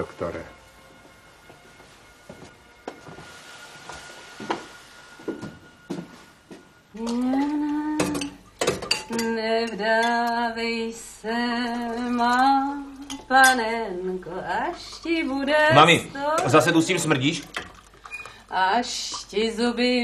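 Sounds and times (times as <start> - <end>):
woman singing slow tune: 6.9 - 8.4, 9.0 - 16.5, 18.4 - 20.0
cutlery clinking on crockery: 8.0 - 10.4.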